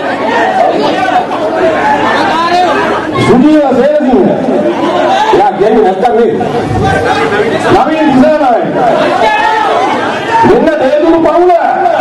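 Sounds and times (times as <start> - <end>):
man giving a speech: 2.2 - 9.1, 10.4 - 12.0.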